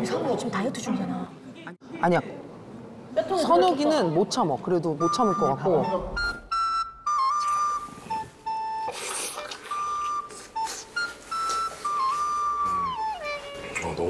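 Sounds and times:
whistle-like melody: 5.0 - 13.8.

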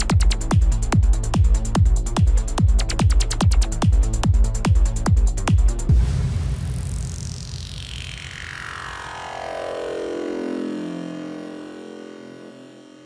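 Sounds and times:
synthesized downward sweep: 5.8 - 13.0.

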